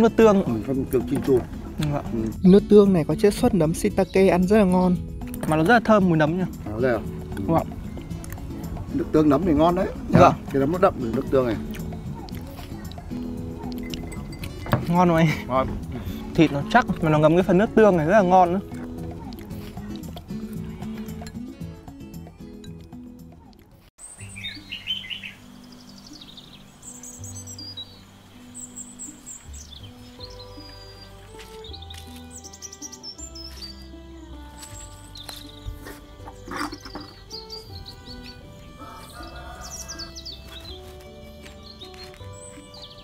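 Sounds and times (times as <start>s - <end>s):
background music of held notes: 0.0s - 43.0s
small birds chirping: 0.0s - 43.0s.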